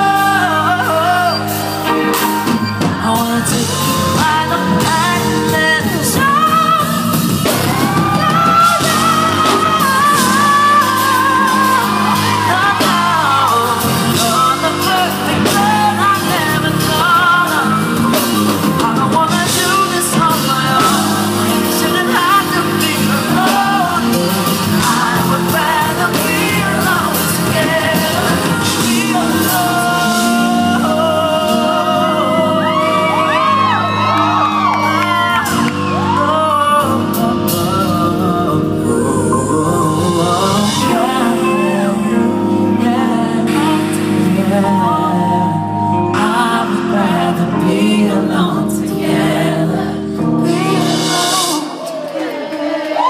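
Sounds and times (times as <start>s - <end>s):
man singing soul: 0.0s - 52.1s
neo-soul band playing: 0.0s - 53.0s
voices whooping and shouting: 7.5s - 8.9s, 32.1s - 36.5s.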